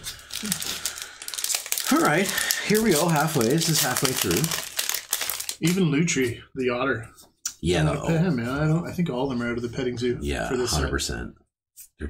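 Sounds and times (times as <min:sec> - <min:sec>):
foil wrapper crinkling: 0:00.0 - 0:05.8.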